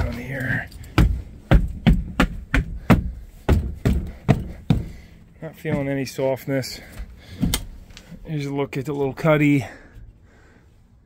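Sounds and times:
footsteps thudding on boat floor: 0:00.9 - 0:06.1.

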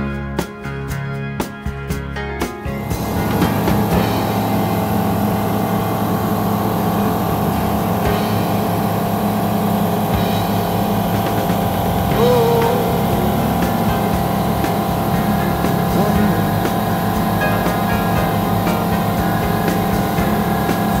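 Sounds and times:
aircraft engine and propeller drone: 0:02.8 - 0:21.0.

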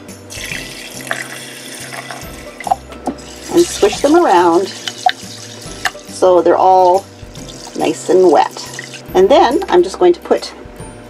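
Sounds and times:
water pouring into jar: 0:00.3 - 0:06.2, 0:06.8 - 0:09.2.

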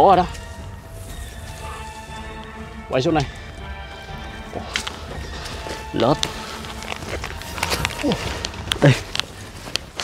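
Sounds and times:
background music: 0:00.0 - 0:10.0
dry leaves and twigs crackling: 0:00.0 - 0:10.0.

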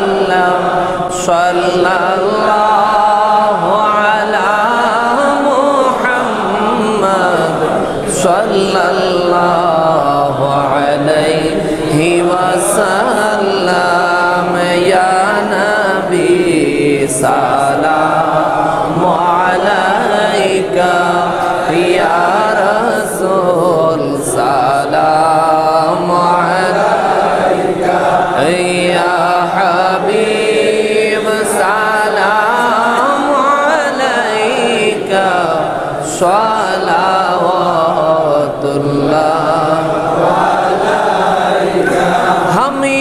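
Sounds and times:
man chanting over a microphone: 0:00.0 - 0:43.0.

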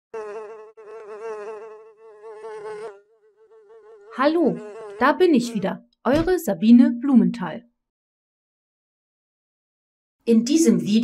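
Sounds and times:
cartoon bee buzzing: 0:00.1 - 0:05.8.

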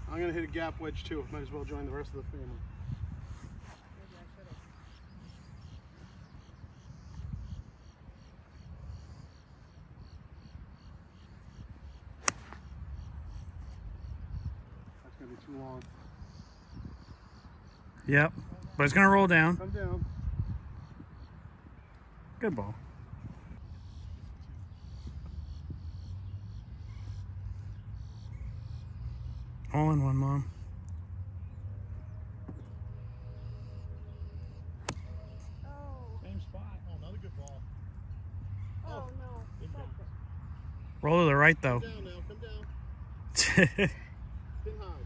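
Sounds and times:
wind rumble on microphone: 0:00.0 - 0:26.9
golf club striking ball: 0:12.2 - 0:13.1, 0:34.8 - 0:35.4.

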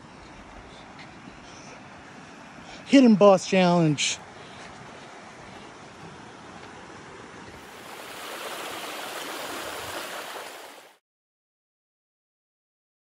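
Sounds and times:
stream rushing over rocks: 0:07.6 - 0:11.0.

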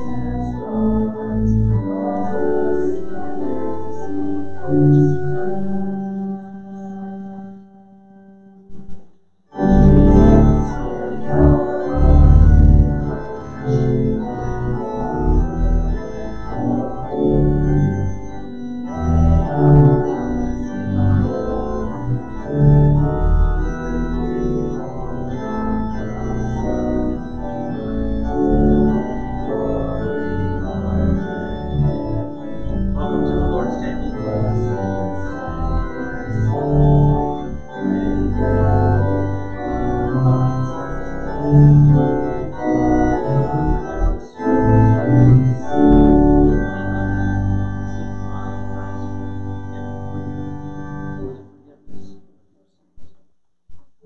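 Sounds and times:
organ music: 0:00.0 - 0:52.2.

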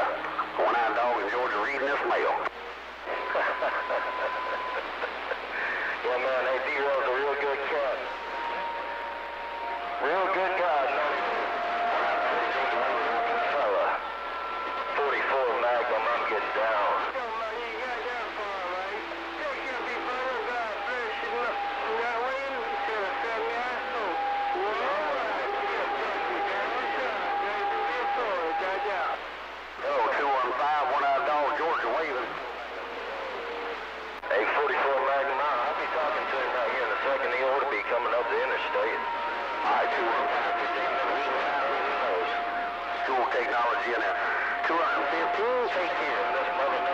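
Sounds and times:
distorted radio voices: 0:00.0 - 0:46.9
steady whistling tones: 0:03.1 - 0:29.2, 0:34.6 - 0:46.9.

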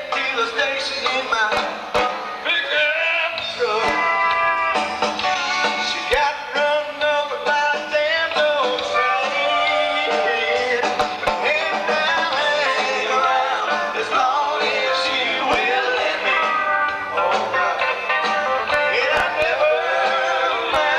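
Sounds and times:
live country band playing: 0:00.0 - 0:20.9.

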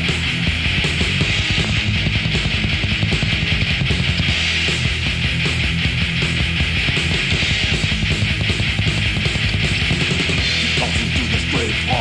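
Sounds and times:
bass guitar: 0:00.0 - 0:12.0
distorted electric guitars: 0:00.0 - 0:12.0
rapid drumming: 0:00.0 - 0:12.0.

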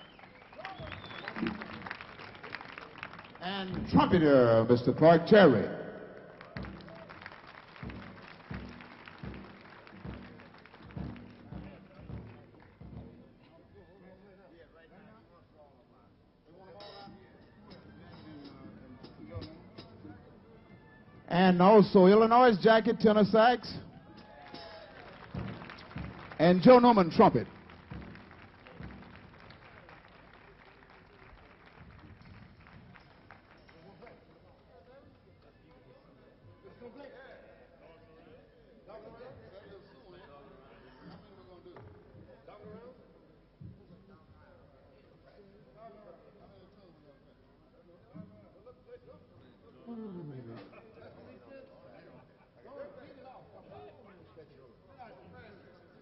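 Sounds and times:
audience applause: 0:00.0 - 0:04.2, 0:06.3 - 0:12.7, 0:24.4 - 0:34.0
soft low ringing thumps: 0:07.8 - 0:13.4.

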